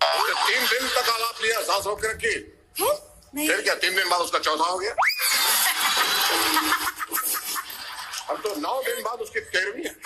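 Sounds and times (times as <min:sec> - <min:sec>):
audience laughing and applauding: 0:05.4 - 0:08.6.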